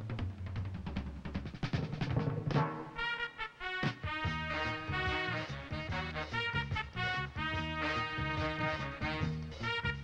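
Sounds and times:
timpani rolling and striking: 1.6s - 3.2s
brass chords: 2.5s - 10.0s.

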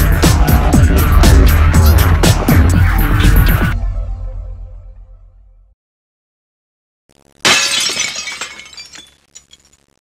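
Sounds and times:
glass shattering crash: 7.4s - 10.0s
tinkling glass fragments: 7.5s - 10.0s.

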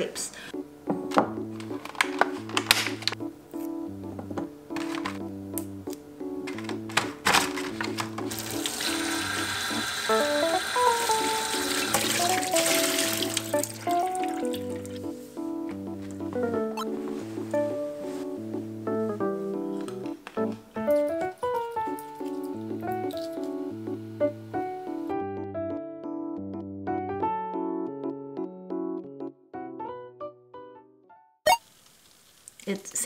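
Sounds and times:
plastic punnet clicking: 1.1s - 3.2s, 4.7s - 8.3s.

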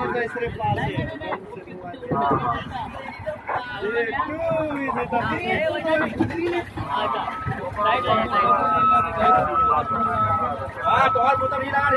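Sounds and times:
voices talking: 0.0s - 11.9s.

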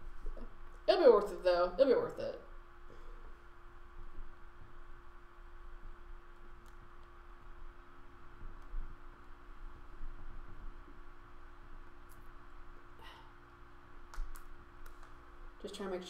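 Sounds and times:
steady electrical hum: 0.0s - 16.0s.

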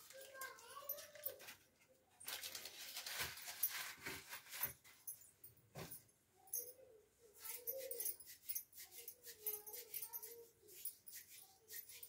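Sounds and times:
glass bangles clinking: 3.5s - 12.0s.

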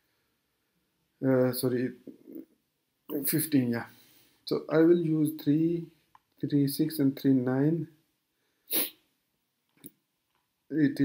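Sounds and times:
sharp breath intake: 8.5s - 9.0s.

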